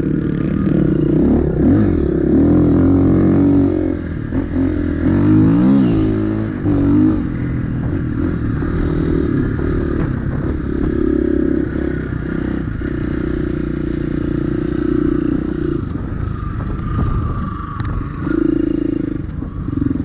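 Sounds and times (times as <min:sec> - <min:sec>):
dirt bike engine running: 0:00.0 - 0:20.0.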